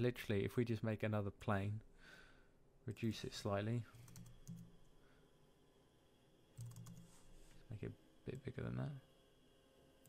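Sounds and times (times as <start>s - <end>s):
computer keyboard clicks: 4.0s - 4.7s, 6.6s - 7.1s.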